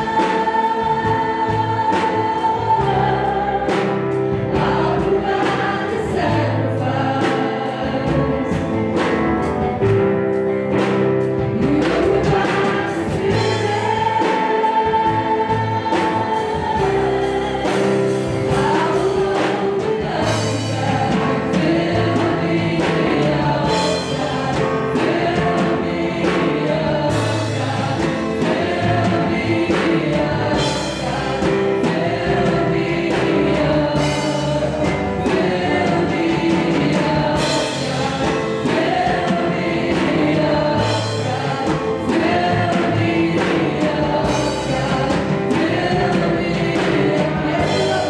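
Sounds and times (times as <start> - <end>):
group singing gospel song: 0.0 - 48.0
woman singing lead: 11.4 - 48.0.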